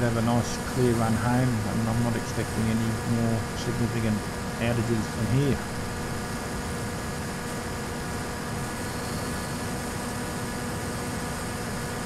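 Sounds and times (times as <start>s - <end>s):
electric motor and propeller whine: 0.0s - 12.0s.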